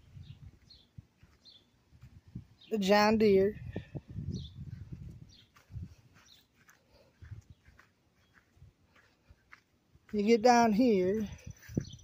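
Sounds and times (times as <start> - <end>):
footsteps through grass and dirt: 0.0 - 12.0.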